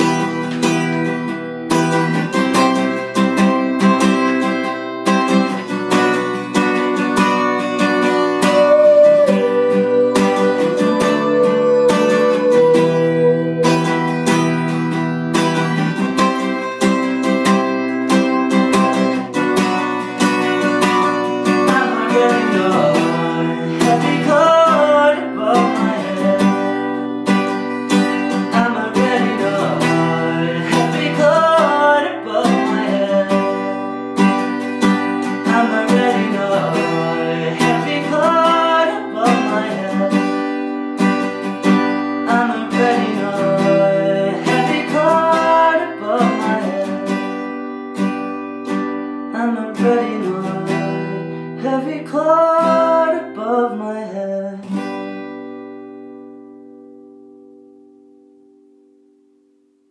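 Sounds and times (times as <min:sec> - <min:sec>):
acoustic guitar strumming: 0:00.0 - 0:59.9
man singing: 0:06.9 - 0:14.6, 0:20.3 - 0:27.4, 0:28.0 - 0:47.5, 0:49.3 - 0:55.0.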